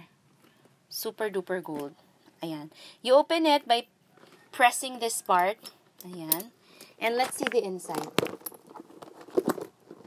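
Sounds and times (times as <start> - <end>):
handbag rustling: 7.0 - 10.0.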